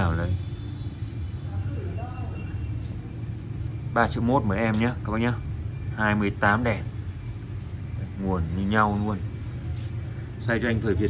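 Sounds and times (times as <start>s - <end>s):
faint voice: 1.4s - 2.7s.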